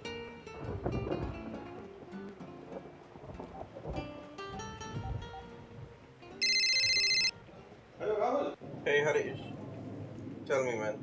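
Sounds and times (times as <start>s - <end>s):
mobile phone ringtone: 6.4s - 7.3s.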